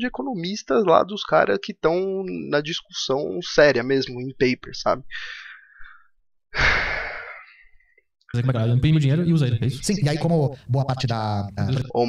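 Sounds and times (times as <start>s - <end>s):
man sighing: 6.6s - 7.6s.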